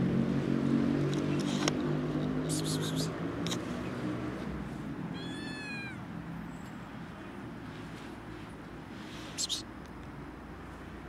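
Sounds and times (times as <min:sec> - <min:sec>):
kitten meowing: 0:05.1 - 0:06.1.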